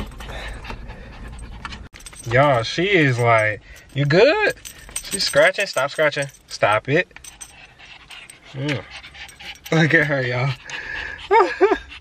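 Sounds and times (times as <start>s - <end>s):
small dog panting: 0.0s - 1.9s, 7.2s - 12.0s.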